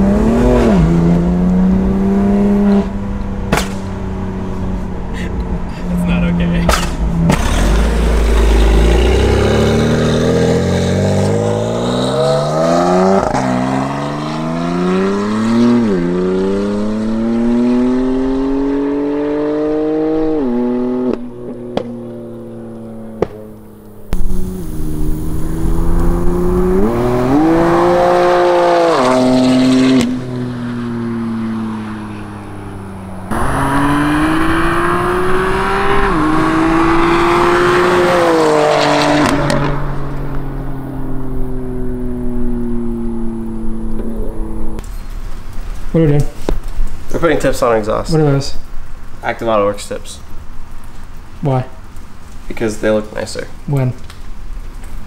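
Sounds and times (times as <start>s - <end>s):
car engine accelerating hard: 0.0s - 4.5s, 5.1s - 23.3s, 24.0s - 44.8s
exhaust pops and crackles: 3.2s - 4.0s, 6.1s - 11.7s, 21.1s - 27.0s, 42.0s - 55.0s.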